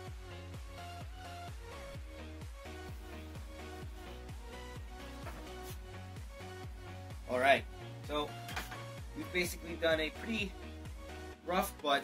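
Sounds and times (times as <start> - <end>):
upbeat electronic music: 0.0 - 12.0.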